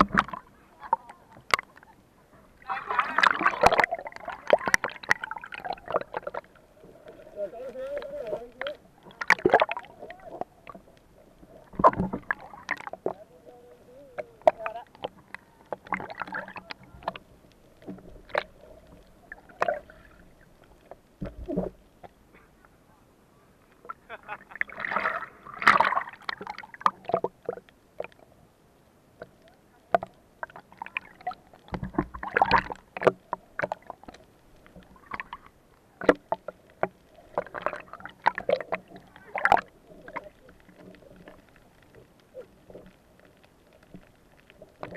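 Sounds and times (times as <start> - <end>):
clicks underwater: 0.0 - 2.0, 3.0 - 7.3, 7.9 - 13.2, 14.2 - 22.5, 23.8 - 28.3, 29.2 - 44.9
water splashing and gurgling: 0.0 - 22.4, 23.8 - 28.4, 29.1 - 44.9.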